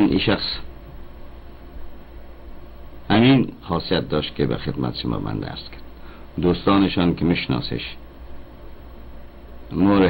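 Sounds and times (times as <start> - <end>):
background hiss: 0.0 - 10.0
low hum: 0.0 - 10.0.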